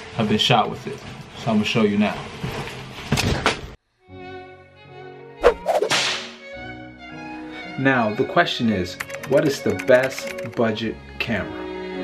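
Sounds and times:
background music with held notes: 3.9 - 12.0
snap: 5.4 - 6.4
whip-crack swoosh: 5.4 - 6.4.

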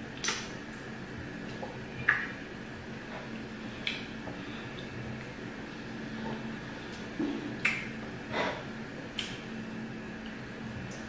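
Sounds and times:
sharp wet click: 0.2 - 0.5.

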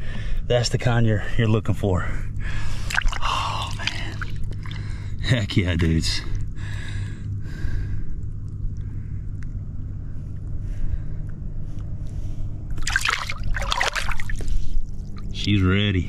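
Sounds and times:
steady low hum: 0.0 - 16.0
water sloshing and trickling: 2.5 - 5.3, 12.7 - 15.5
fish splashing in water: 2.8 - 4.9, 12.7 - 15.4.

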